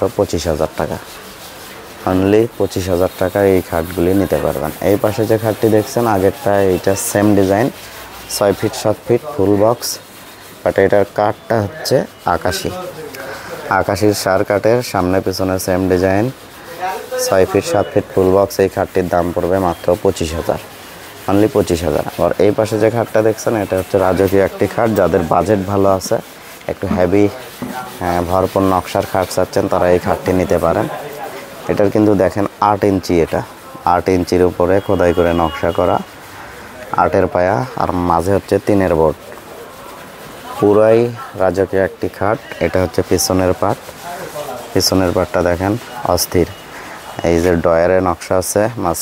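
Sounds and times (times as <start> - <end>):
man talking: 0.0 - 1.0, 2.0 - 10.0, 10.6 - 36.1, 36.8 - 39.4, 40.5 - 49.0
man speaking: 2.1 - 10.0, 10.6 - 20.7, 21.3 - 36.1, 36.8 - 39.4, 40.5 - 49.0.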